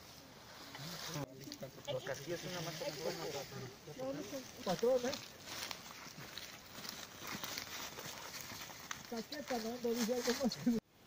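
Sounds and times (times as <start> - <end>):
brush rustling: 0.0 - 10.8
footsteps on dirt path: 2.0 - 10.8.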